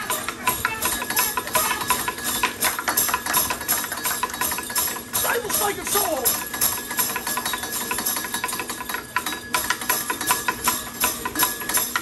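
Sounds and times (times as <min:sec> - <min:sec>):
bells jingling: 0:00.0 - 0:12.0.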